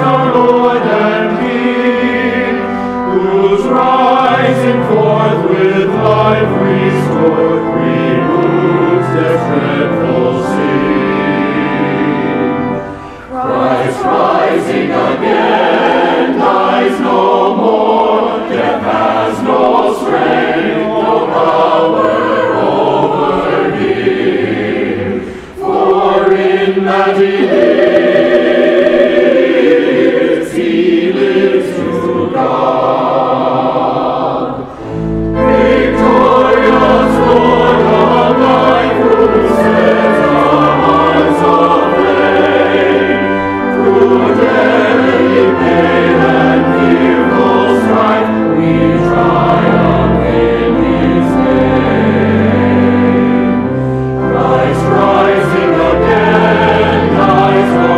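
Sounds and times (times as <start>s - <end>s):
choir singing a hymn: 0.0s - 57.9s.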